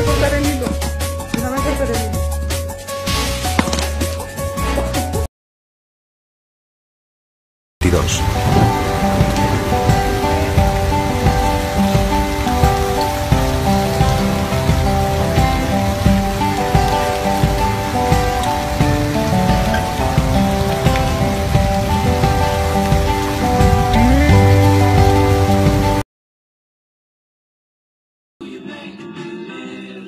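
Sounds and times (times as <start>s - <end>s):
background music: 0.0s - 5.3s, 7.8s - 26.0s
rain pouring on street: 7.8s - 26.0s
water splashing: 7.8s - 26.0s.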